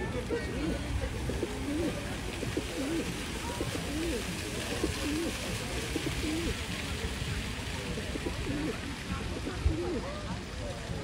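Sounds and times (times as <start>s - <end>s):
steady background noise: 0.0s - 11.0s
pigeons cooing: 0.5s - 6.6s, 8.0s - 10.1s.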